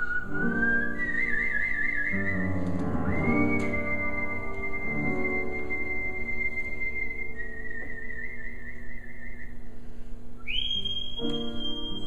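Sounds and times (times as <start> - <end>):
man whistling a melody: 0.0 - 9.7, 10.4 - 12.0
piano chords: 0.0 - 12.0.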